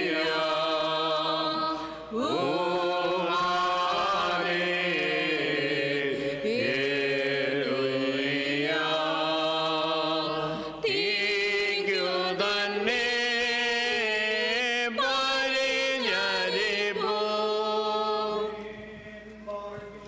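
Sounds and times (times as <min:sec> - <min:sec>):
liturgical chant: 0:00.0 - 0:20.0.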